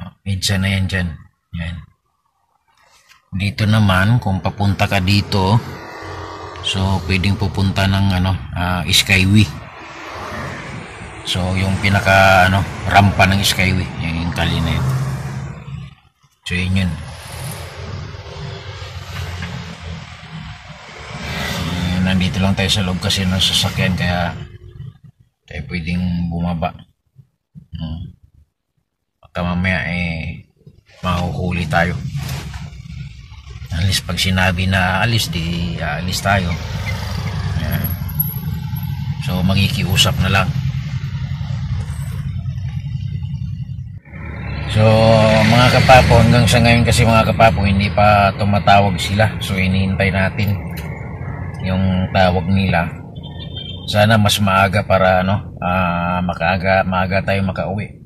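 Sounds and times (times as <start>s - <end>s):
man talking: 0.0s - 1.9s, 3.3s - 5.9s, 6.6s - 9.8s, 10.7s - 15.9s, 16.5s - 17.2s, 21.6s - 24.9s, 25.5s - 26.9s, 27.6s - 28.2s, 29.2s - 32.1s, 33.7s - 36.7s, 37.4s - 38.0s, 39.2s - 40.6s, 44.6s - 50.9s, 51.6s - 53.1s, 53.8s - 58.0s
street traffic noise: 3.0s - 25.0s, 30.6s - 58.0s
low engine hum: 3.9s - 16.0s, 32.5s - 54.6s.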